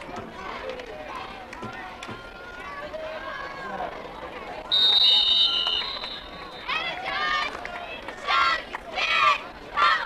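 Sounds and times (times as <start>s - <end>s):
outdoor background noise: 0.0s - 10.0s
referee's whistle: 4.7s - 6.8s.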